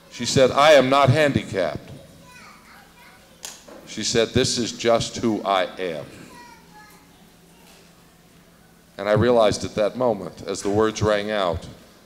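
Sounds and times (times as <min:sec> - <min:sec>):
man speaking into a microphone: 0:00.1 - 0:02.0, 0:03.9 - 0:06.3, 0:09.0 - 0:11.8
faint children's voices: 0:01.8 - 0:03.7, 0:05.9 - 0:08.9.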